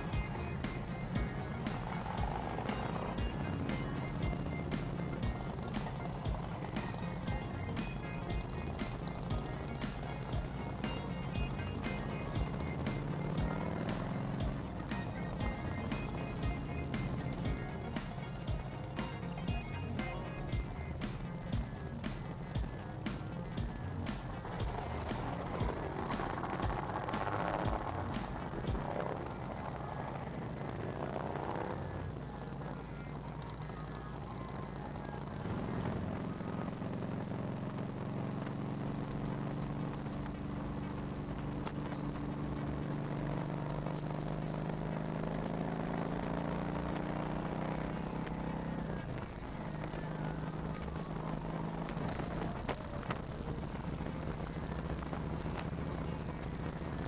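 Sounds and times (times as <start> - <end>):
motorcycle engine: 0.0 - 57.0.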